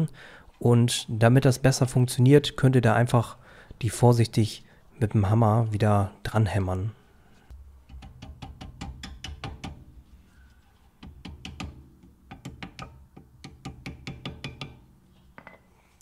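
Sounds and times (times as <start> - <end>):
hammer tapping metal clip: 7.9 - 9.8.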